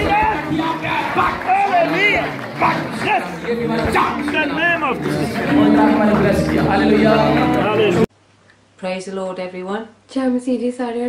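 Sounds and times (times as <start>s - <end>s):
crowd murmur: 0.0s - 8.1s.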